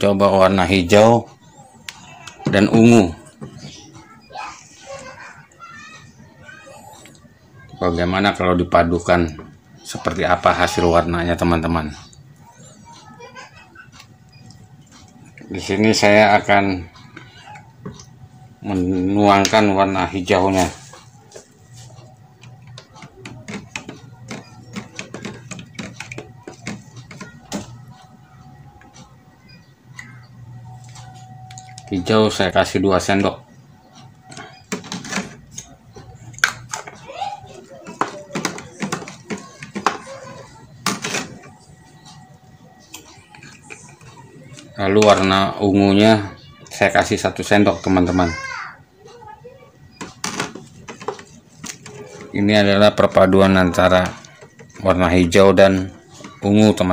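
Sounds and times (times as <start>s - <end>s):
spoon scraping plastic tub: 20.6s - 27.9s, 37.6s - 41.7s, 49.9s - 56.6s.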